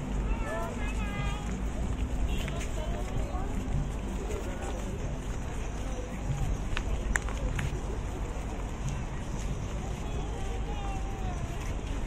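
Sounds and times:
faint indistinct voices: 0.0s - 12.0s
footsteps on paved path: 0.0s - 12.0s.

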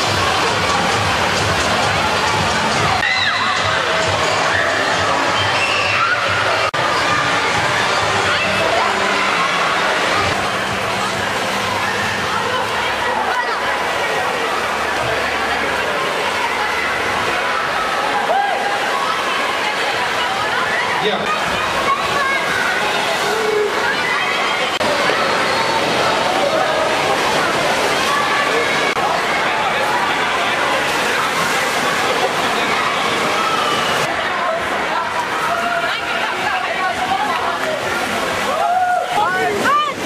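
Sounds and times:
pool water sloshing and splashing: 0.0s - 40.0s
children shouting and calling: 1.8s - 40.0s.

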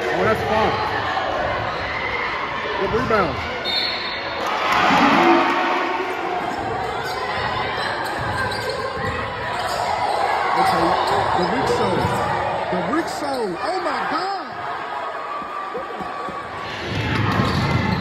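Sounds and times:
crowd noise: 0.0s - 18.0s
basketball bouncing on court: 16.9s - 18.0s.

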